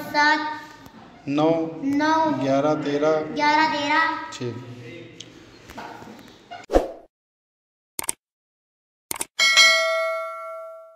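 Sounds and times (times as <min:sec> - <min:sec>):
bell ringing: 0:09.4 - 0:10.9.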